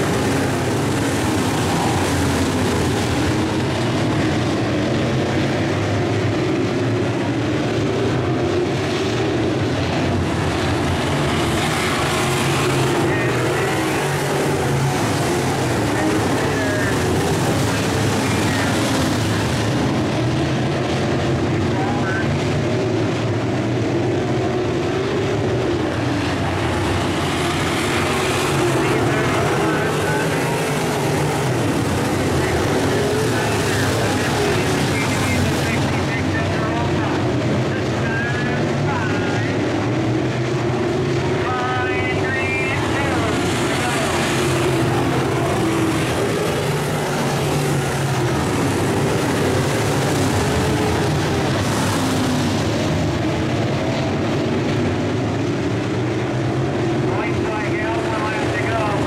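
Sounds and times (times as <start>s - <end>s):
voices: 0.0s - 4.3s, 11.0s - 20.1s, 21.5s - 22.5s, 25.9s - 40.0s, 41.2s - 52.8s, 57.0s - 59.0s
race car engines running hard: 0.0s - 59.0s.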